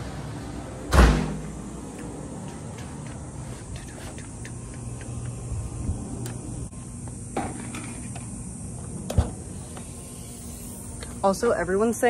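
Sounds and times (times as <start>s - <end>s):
steady high-pitched hiss: 3.5s - 12.0s.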